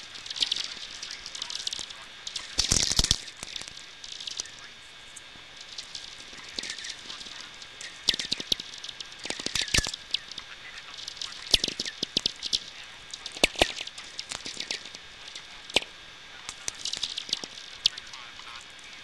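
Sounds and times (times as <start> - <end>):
crackle of sharp radio clicks: 0.0 - 19.0.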